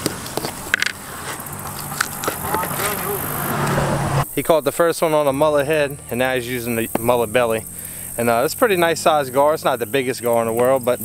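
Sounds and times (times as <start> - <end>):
distant voices talking: 0.0 - 11.0
low steady hum: 0.0 - 11.0.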